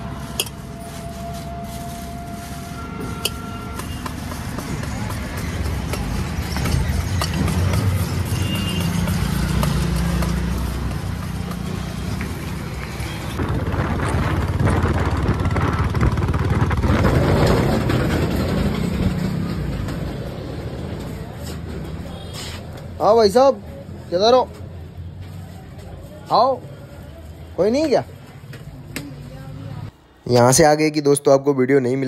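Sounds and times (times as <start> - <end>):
street traffic noise: 0.0 - 32.0
motorcycle engine running: 13.6 - 19.6.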